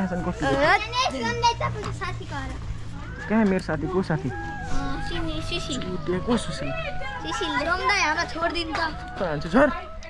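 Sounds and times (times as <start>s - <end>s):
children talking: 0.0s - 10.0s
steady low hum: 0.0s - 10.0s.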